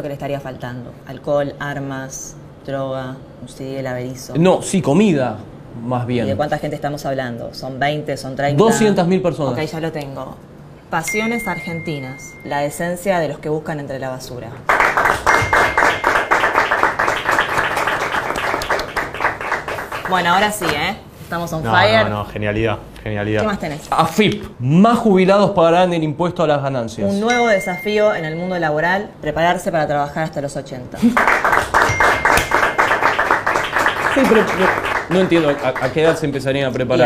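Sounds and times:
people clapping: 14.6 - 20.9, 31.0 - 36.5
person laughing: 34.2 - 34.7.

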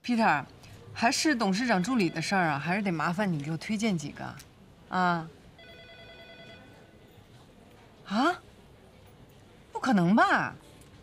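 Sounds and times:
telephone ringing tone: 1.6 - 2.7, 5.6 - 6.9.

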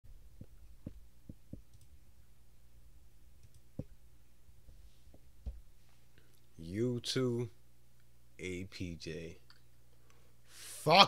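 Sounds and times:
low steady hum: 0.1 - 11.0
computer mouse clicks: 1.6 - 2.0, 3.4 - 3.9.

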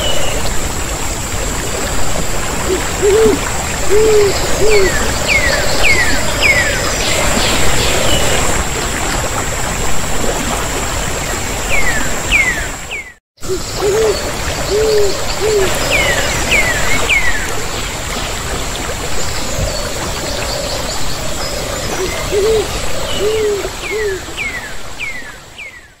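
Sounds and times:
waterfall rushing: 0.0 - 25.5
bird hooting: 2.7 - 6.1, 13.5 - 16.2, 22.0 - 24.2.

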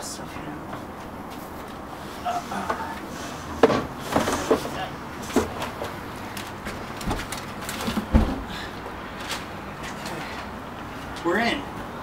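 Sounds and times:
person climbing through window: 2.4 - 10.6
heavy thump on carpet: 7.9 - 8.5.

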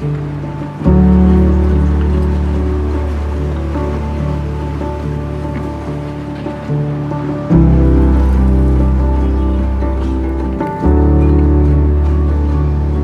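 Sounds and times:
music with long held notes: 0.0 - 13.0
deep steady bass: 6.7 - 13.0.

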